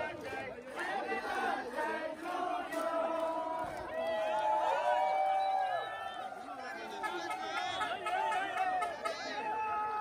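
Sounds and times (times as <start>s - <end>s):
crowd chattering and calling out: 0.0s - 4.3s, 5.2s - 10.0s.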